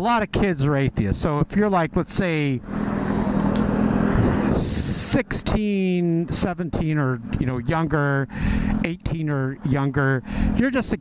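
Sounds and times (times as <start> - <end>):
vehicle passing: 1.5 - 11.0.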